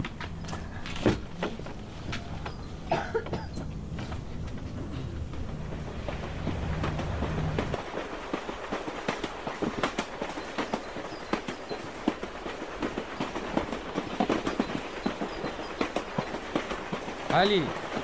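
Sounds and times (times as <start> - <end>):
low hum: 0.0 - 8.4
footsteps on garden path: 0.0 - 18.0.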